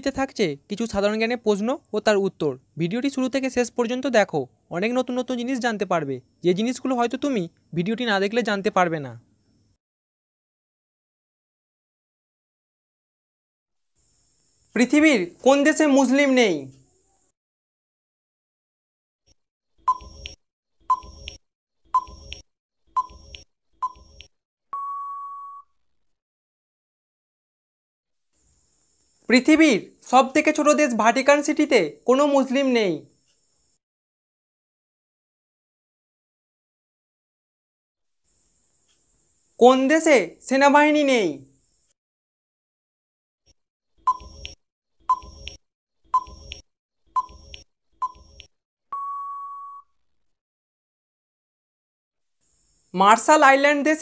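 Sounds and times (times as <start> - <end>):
short beeps: 22.0 - 22.4, 23.0 - 25.7, 44.1 - 45.6, 47.2 - 49.9
countdown timer ticks: 22.0 - 25.4, 44.1 - 45.6, 46.2 - 46.6, 47.2 - 49.7
long steady beep: 23.0 - 25.7, 44.1 - 45.6, 47.2 - 49.9.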